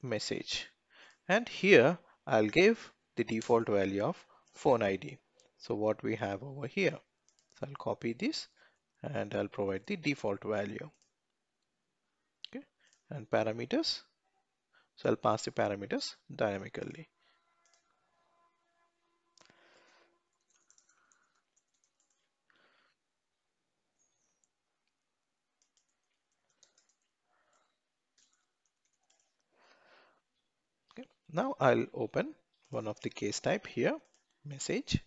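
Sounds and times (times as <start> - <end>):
computer mouse click: 20.4 - 22.2, 25.6 - 29.4.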